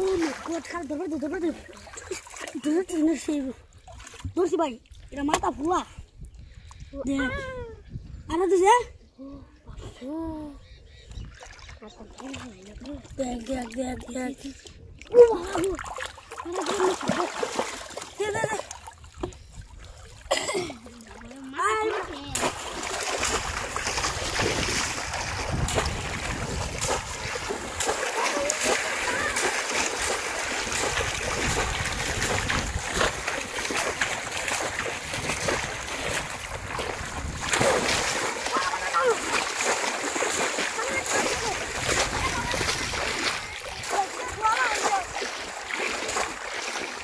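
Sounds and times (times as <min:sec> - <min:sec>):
water sloshing: 0:00.0 - 0:06.0, 0:11.2 - 0:47.0.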